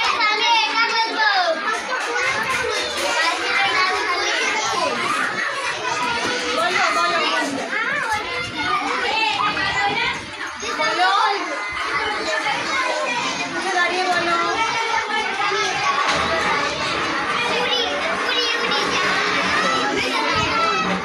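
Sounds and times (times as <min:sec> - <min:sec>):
children chattering: 0:00.0 - 0:21.0.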